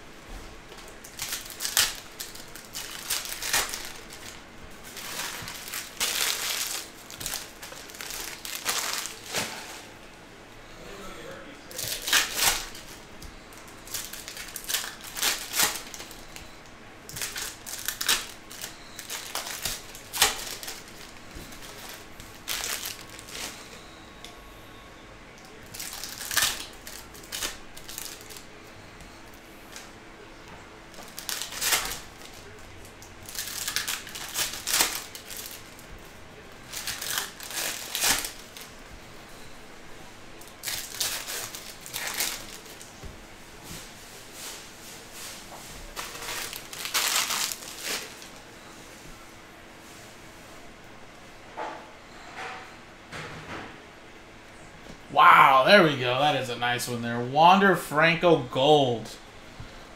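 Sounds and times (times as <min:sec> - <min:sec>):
foil wrappers tearing and crinkling: 0:00.8 - 0:09.8, 0:11.7 - 0:16.4, 0:17.0 - 0:23.6, 0:25.5 - 0:28.5, 0:30.9 - 0:32.6, 0:33.2 - 0:38.7, 0:40.4 - 0:42.9, 0:45.9 - 0:48.5.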